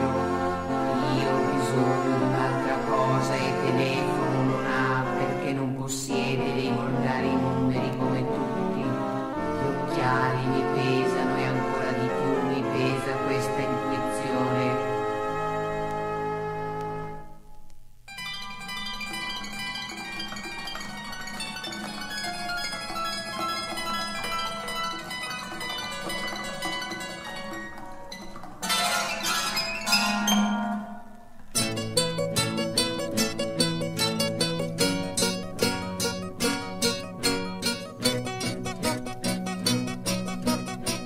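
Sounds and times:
plucked string instrumental music: 0:00.0 - 0:41.0.

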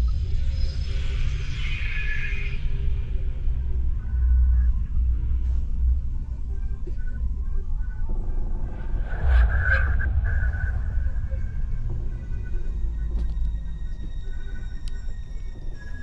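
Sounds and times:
low rumbling drone: 0:02.7 - 0:16.0.

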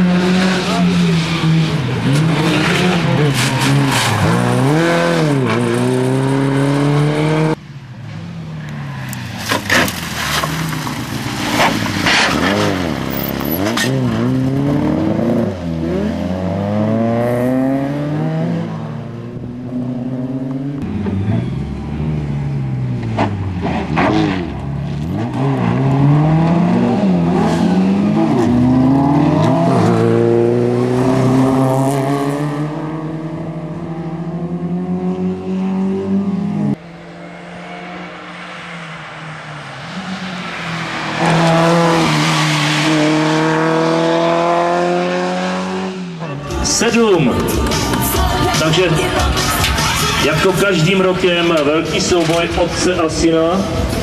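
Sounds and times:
rally cars accelerating hard: 0:00.0 - 0:07.6, 0:09.4 - 0:48.0.

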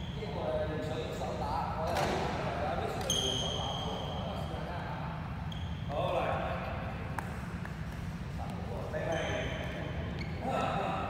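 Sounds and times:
shoe squeak: 0:00.0 - 0:01.3, 0:02.8 - 0:06.4, 0:08.7 - 0:10.7.

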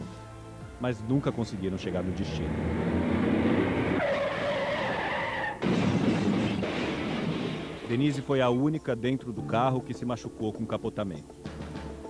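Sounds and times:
long tyre screech: 0:02.4 - 0:05.6
car tyres skidding: 0:02.4 - 0:05.7.

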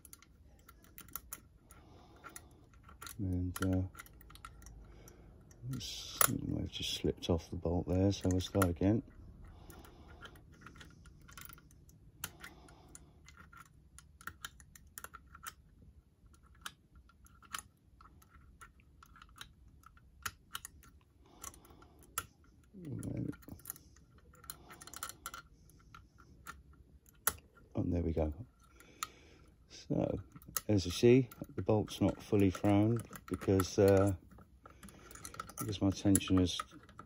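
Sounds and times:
lock picking metallic clicks: 0:00.0 - 0:29.2, 0:29.9 - 0:37.0.

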